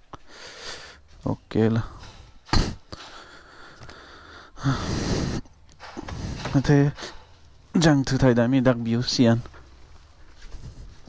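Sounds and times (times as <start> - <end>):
man breathy exhale: 2.9 - 7.3.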